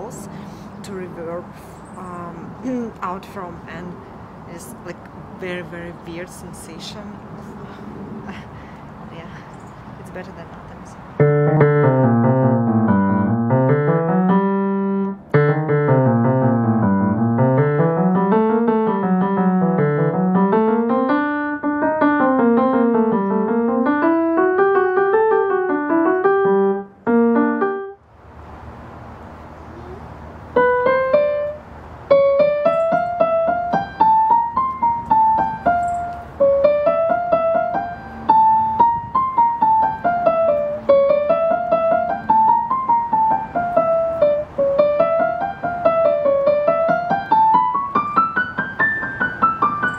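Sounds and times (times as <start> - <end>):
digital piano playing: 11.2 - 28.0, 29.8 - 49.9.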